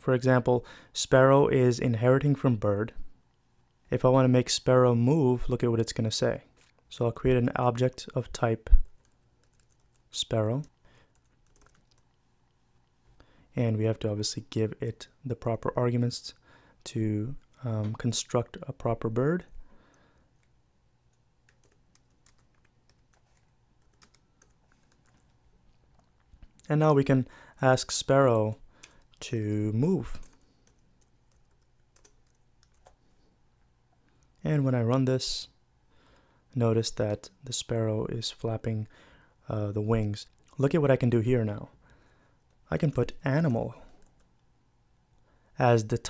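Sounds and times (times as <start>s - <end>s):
soft keyboard keystrokes: 10.6s - 12.2s, 20.4s - 26.6s, 30.2s - 33.0s.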